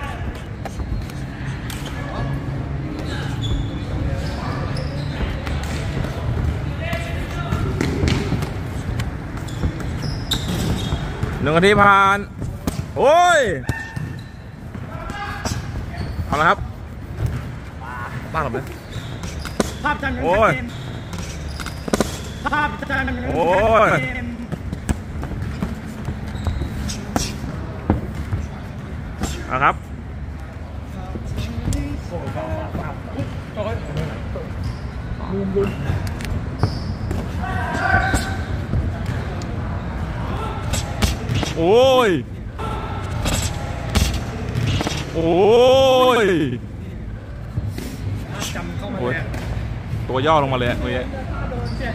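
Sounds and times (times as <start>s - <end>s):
voices: 0.0s - 51.9s
man shouting: 13.0s - 14.0s.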